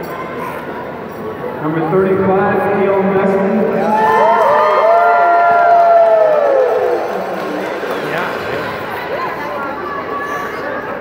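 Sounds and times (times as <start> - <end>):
crowd cheering: 3.7 - 10.5.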